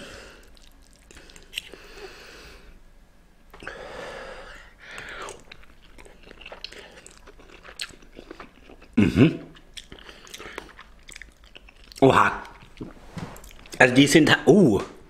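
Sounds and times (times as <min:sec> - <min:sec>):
wet chewing: 0:00.4 - 0:01.9, 0:05.0 - 0:13.8.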